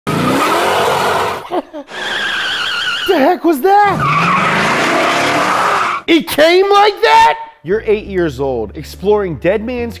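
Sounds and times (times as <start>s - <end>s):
car engine accelerating: 0.1s - 2.9s
tyres squealing: 0.1s - 6.1s.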